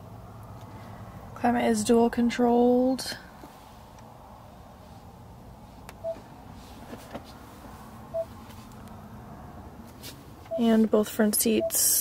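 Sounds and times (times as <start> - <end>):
short electronic beeps: 10.5 - 10.8, 11.5 - 12.0.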